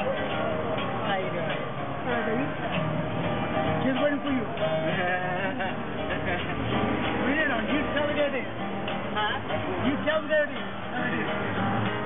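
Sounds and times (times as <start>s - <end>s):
people talking: 0.0s - 2.8s, 3.7s - 8.5s, 9.1s - 11.6s
acoustic guitar strumming: 0.0s - 12.0s.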